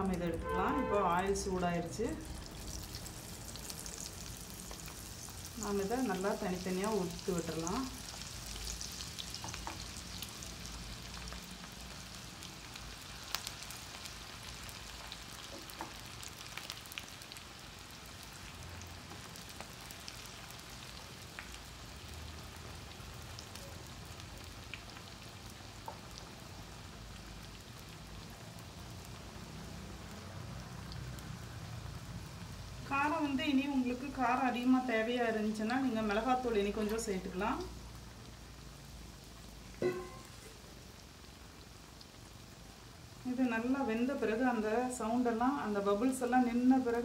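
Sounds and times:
food deep-frying in hot oil: 0:00.0 - 0:47.0.

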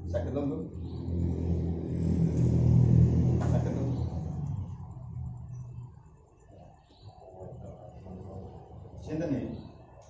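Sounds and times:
loud low rumble: 0:00.0 - 0:06.0.

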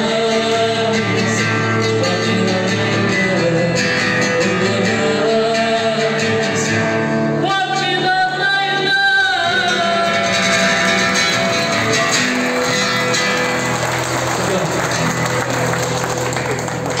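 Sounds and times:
instrumental music: 0:00.0 - 0:17.0
audience clapping: 0:11.0 - 0:17.0.

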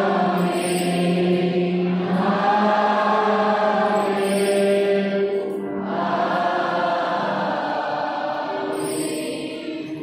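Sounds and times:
voices singing a slow hymn: 0:00.0 - 0:10.0.

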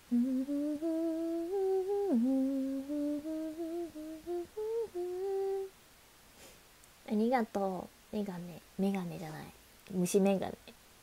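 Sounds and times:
woman humming: 0:00.0 - 0:05.7.

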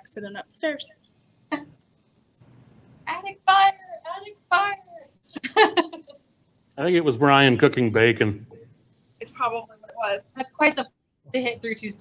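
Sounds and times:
faint low hum: 0:00.0 - 0:12.0
person laughing: 0:05.4 - 0:06.1.

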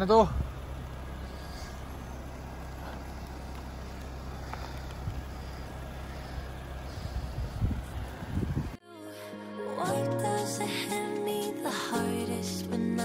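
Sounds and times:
car engine running at low revs: 0:00.0 - 0:08.8.

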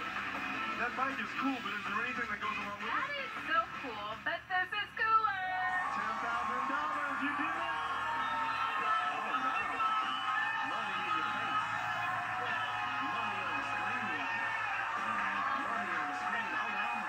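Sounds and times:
studio band playing music: 0:00.0 - 0:04.1, 0:05.5 - 0:17.0
people cheering: 0:05.4 - 0:17.0.

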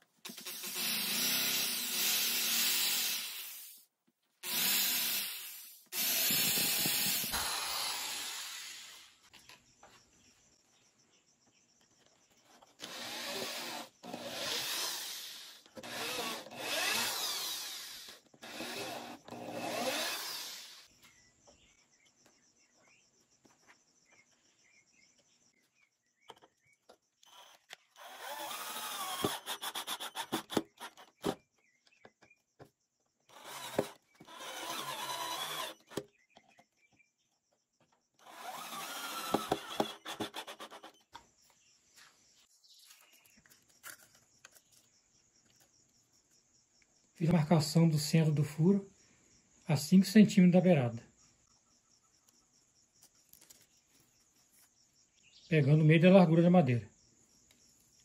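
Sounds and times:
cordless drill boring into wood: 0:00.2 - 0:03.8, 0:04.4 - 0:09.3, 0:12.8 - 0:20.9, 0:27.2 - 0:31.4, 0:33.3 - 0:36.0, 0:38.2 - 0:41.0
drill driving screw into wood: 0:00.2 - 0:03.8, 0:04.4 - 0:09.3, 0:12.8 - 0:20.9, 0:27.2 - 0:31.4, 0:33.3 - 0:36.1, 0:38.2 - 0:41.1.

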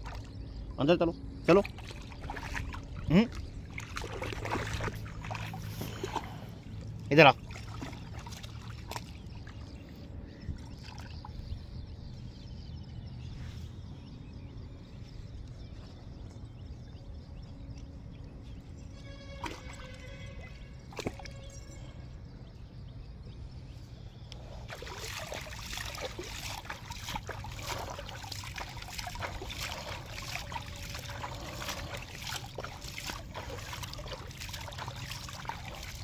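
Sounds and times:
river water sloshing and trickling: 0:00.0 - 0:13.9, 0:14.5 - 0:36.0.

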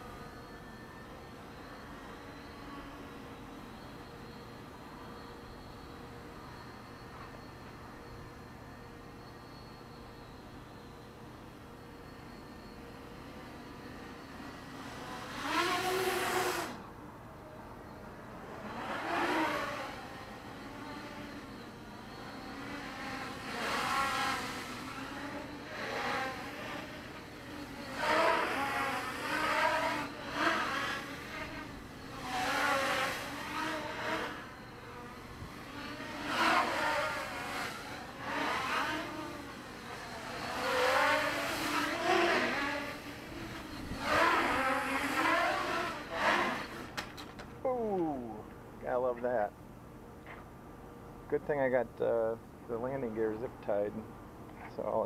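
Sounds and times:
quadcopter motors whining: 0:00.0 - 0:49.5, 0:51.4 - 0:55.0.

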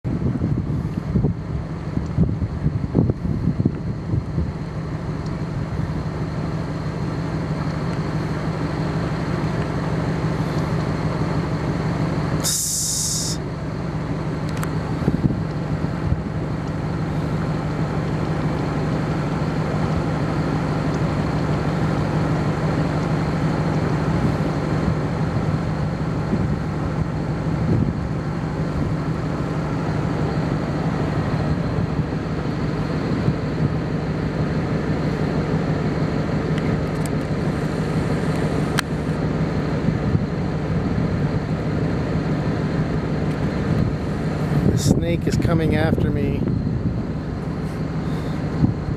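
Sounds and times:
low engine hum: 0:00.0 - 0:48.9.

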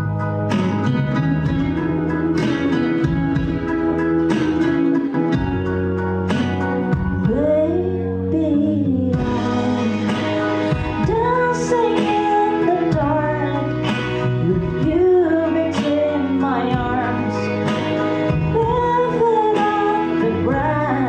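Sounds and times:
instrumental accompaniment: 0:00.0 - 0:21.0
woman singing a slow ballad: 0:01.4 - 0:05.7, 0:06.8 - 0:21.0.

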